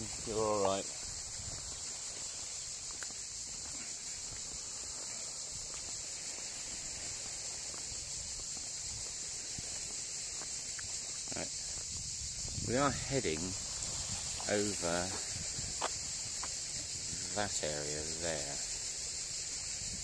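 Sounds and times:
faint footsteps on road: 0.0s - 17.6s
cicadas chirring: 0.0s - 20.0s.

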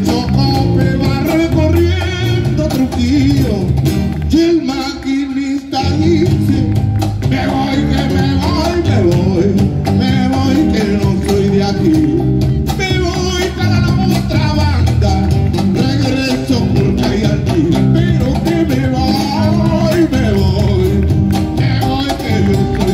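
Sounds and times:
live band playing: 0.0s - 22.9s
person singing: 0.0s - 22.9s.

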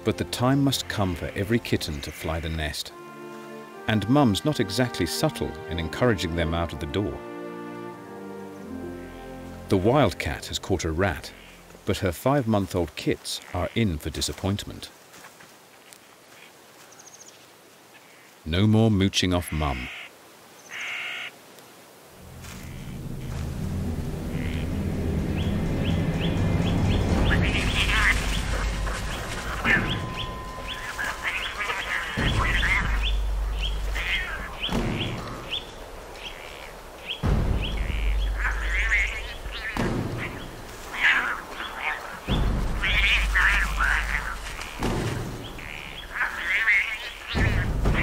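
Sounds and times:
wildcats scuffling: 26.9s - 48.0s.

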